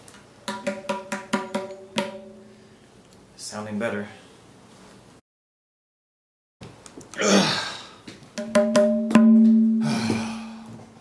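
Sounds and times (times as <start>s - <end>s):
tabla struck with fingers: 0.5s - 2.4s, 8.4s - 9.9s.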